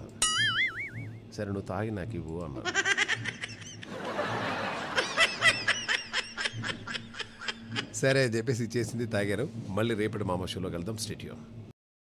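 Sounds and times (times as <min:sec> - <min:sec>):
person laughing in high bursts: 0:04.7 - 0:08.0.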